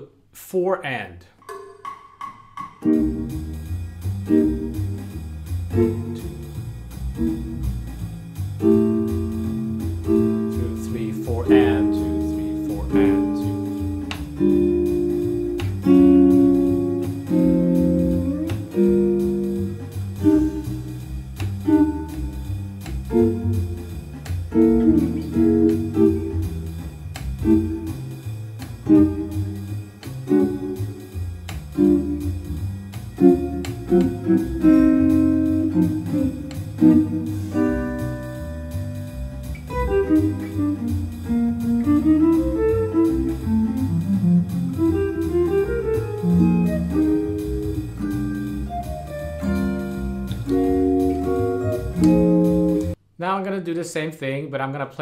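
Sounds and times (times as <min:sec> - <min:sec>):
electric guitar jazz chords: 0:02.6 - 0:53.0.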